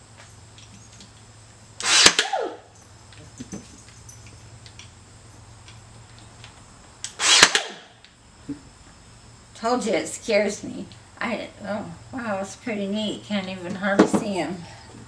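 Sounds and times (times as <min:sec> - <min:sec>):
nail gun firing: 0:01.8 - 0:02.5, 0:07.1 - 0:07.9.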